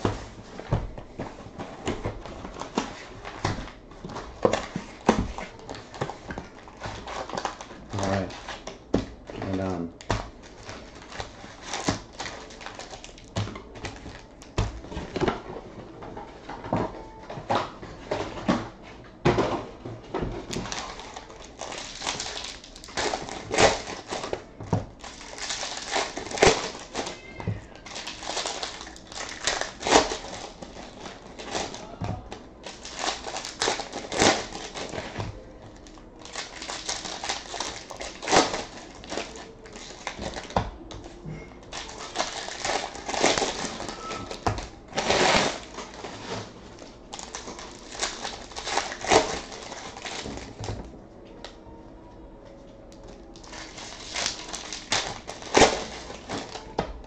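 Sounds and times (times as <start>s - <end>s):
foil wrappers crinkling and tearing: 1.8s - 15.2s, 20.4s - 40.8s, 41.6s - 50.9s, 53.1s - 56.8s.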